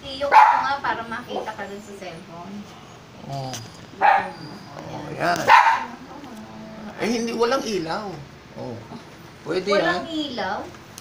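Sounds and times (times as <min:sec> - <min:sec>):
dog barking: 0:00.2 - 0:01.6, 0:04.0 - 0:04.4, 0:05.4 - 0:06.0.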